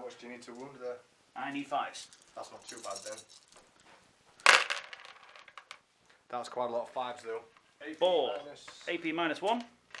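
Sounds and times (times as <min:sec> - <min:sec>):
dice clattering in plastic tub: 0:04.4 - 0:05.8, 0:09.6 - 0:10.0.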